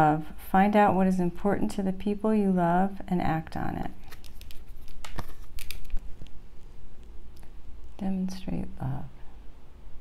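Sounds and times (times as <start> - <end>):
card clicks and rustles: 4.0 - 6.4.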